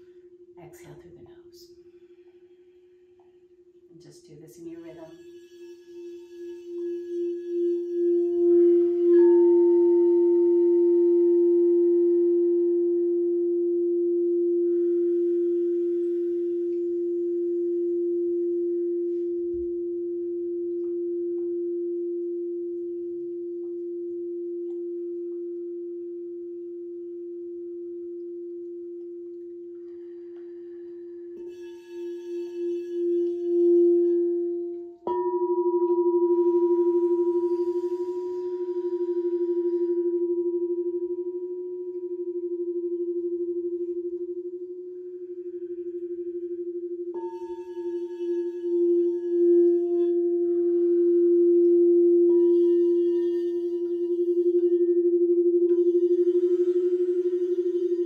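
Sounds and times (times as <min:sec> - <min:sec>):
singing bowl tone: 0:00.0 - 0:58.0.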